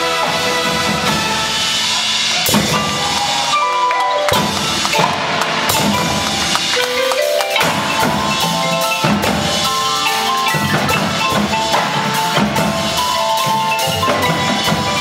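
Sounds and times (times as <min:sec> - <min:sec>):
drum and cymbal hits: 0:00.0 - 0:15.0
marimba and mallet percussion: 0:00.0 - 0:15.0.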